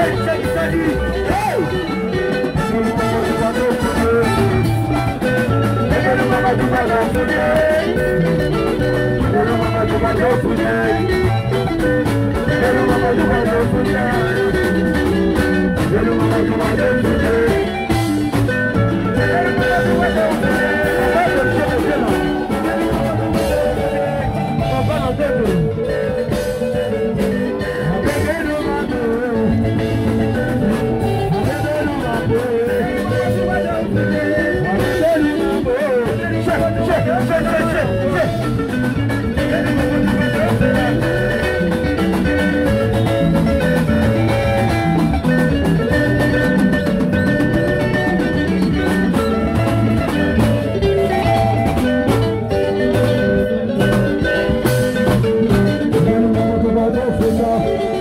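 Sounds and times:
person singing: 0:00.0 - 0:54.9, 0:55.8 - 0:58.0
live band music: 0:00.0 - 0:58.0.

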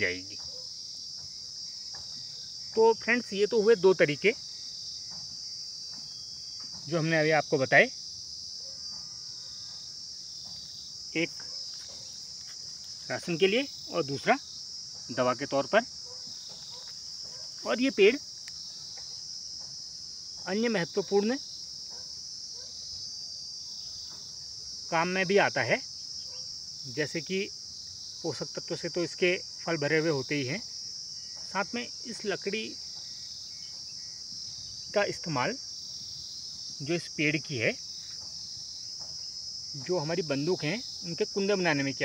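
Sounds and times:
crickets chirring: 0:00.0 - 0:42.0
insects chorus: 0:00.0 - 0:42.0.

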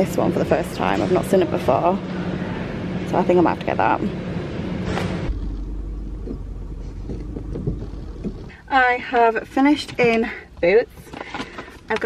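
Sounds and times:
low outdoor rumble: 0:00.0 - 0:12.0
shop background hum: 0:00.0 - 0:12.0.

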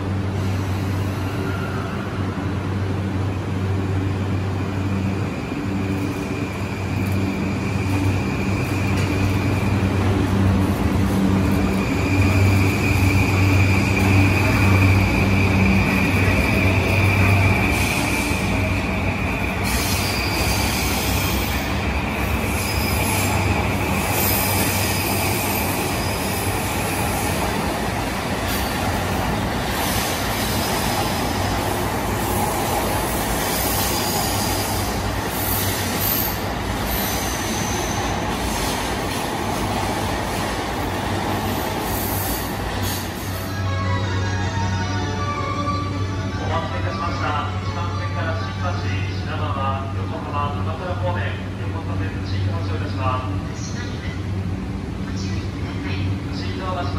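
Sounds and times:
wheel and rail noise: 0:05.0 - 0:43.5.

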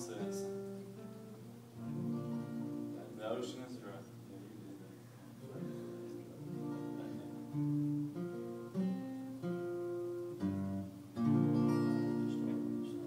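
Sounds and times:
acoustic guitar strumming chords: 0:00.0 - 0:04.3, 0:05.4 - 0:13.0.

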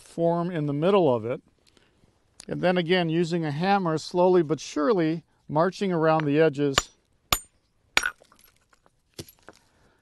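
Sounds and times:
stone striking stone crack: 0:06.2 - 0:09.6.

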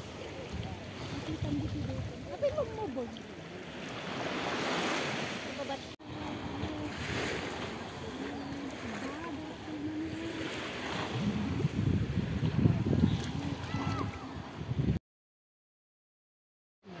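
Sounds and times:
small waves lapping: 0:00.0 - 0:15.0
wind on microphone: 0:00.3 - 0:02.8, 0:06.0 - 0:15.0.

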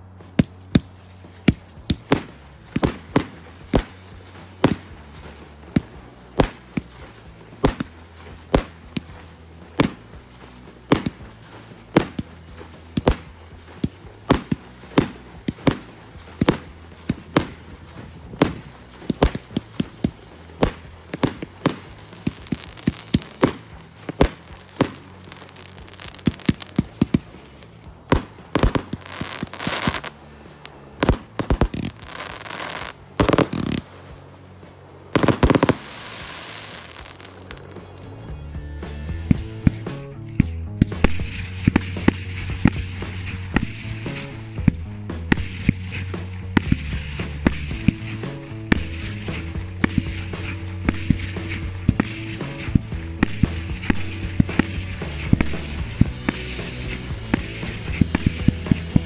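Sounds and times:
firework bangs with hissing: 0:00.0 - 0:38.0, 0:39.3 - 0:59.0
music with a low beat: 0:00.0 - 0:59.0
firework pops: 0:00.3 - 0:09.2, 0:09.8 - 0:30.2, 0:31.0 - 0:33.9, 0:35.1 - 0:38.1, 0:39.3 - 0:59.0.

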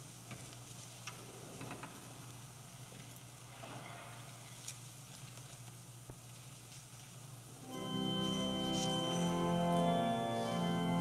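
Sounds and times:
faint clicks and rustles: 0:00.2 - 0:07.4
steady low hum: 0:04.8 - 0:11.0.

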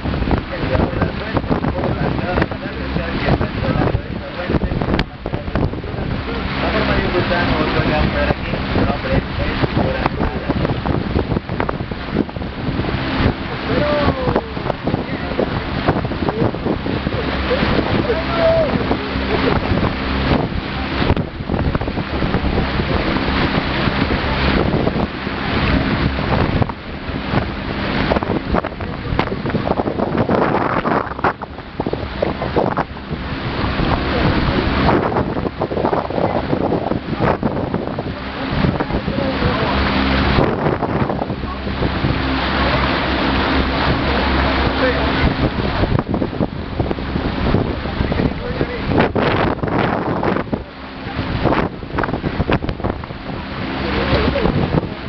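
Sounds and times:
low motor hum: 0:00.0 - 0:55.0
wind roaring over microphone: 0:00.0 - 0:55.0
indistinct voices: 0:12.8 - 0:21.2.

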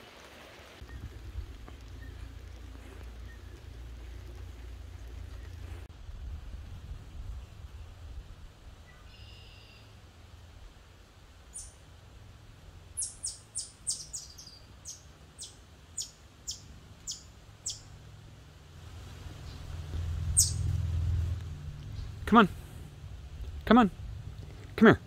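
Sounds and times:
low rumble: 0:00.8 - 0:08.9, 0:17.9 - 0:24.8
small animal chip calls: 0:13.0 - 0:17.9, 0:20.4 - 0:20.6.

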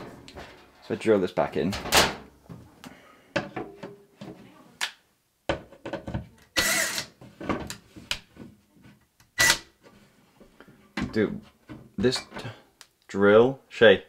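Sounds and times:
power drill driving a screw: 0:06.6 - 0:07.1, 0:09.4 - 0:09.6.

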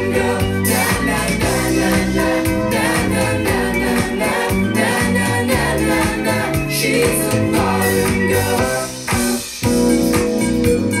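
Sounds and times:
pop song with singing: 0:00.0 - 0:10.2.

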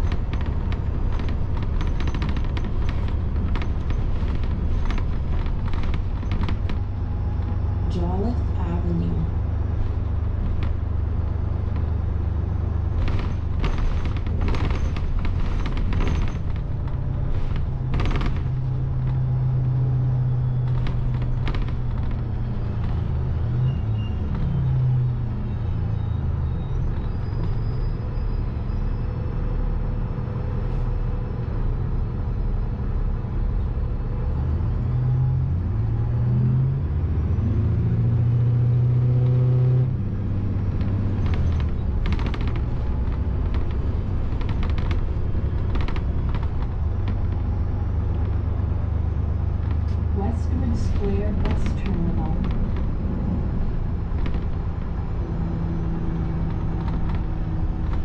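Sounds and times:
bus engine drone: 0:00.0 - 0:58.0
bus interior rattles and clicks: 0:00.0 - 0:58.0.

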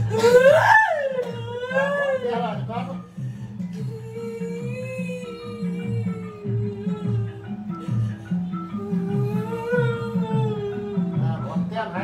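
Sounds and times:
woman wailing: 0:00.0 - 0:02.6, 0:08.7 - 0:11.2.

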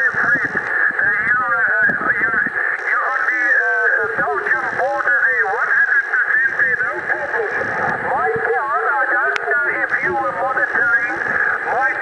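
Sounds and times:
steady radio hiss: 0:00.0 - 0:12.0
thin narrow-band radio voice: 0:00.0 - 0:12.0.

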